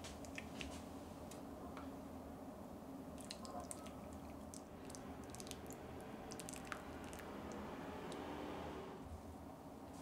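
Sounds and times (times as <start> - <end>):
small splashes and drips: 3.2 - 7.6
broth pouring into bowl: 3.2 - 8.2.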